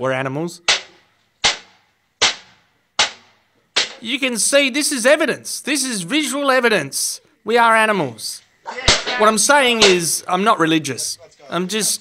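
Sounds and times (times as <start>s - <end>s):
shovel striking with sharp bangs: 0.6s - 4.1s, 8.8s - 10.2s.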